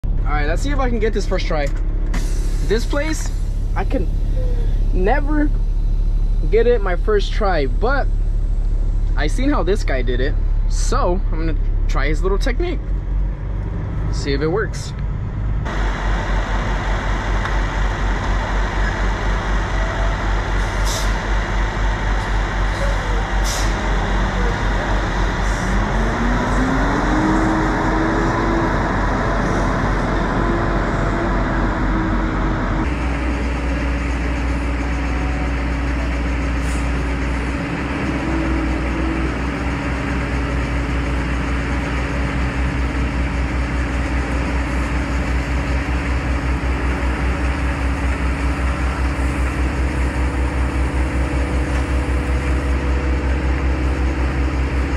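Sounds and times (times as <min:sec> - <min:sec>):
diesel truck engine revving: 0:00.0 - 0:54.9.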